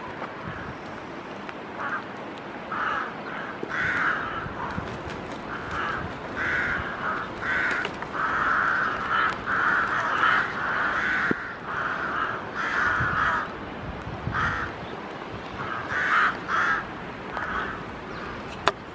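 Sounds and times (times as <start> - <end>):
rooks cawing: 1.7 - 13.6, 14.2 - 14.8, 15.5 - 18.5.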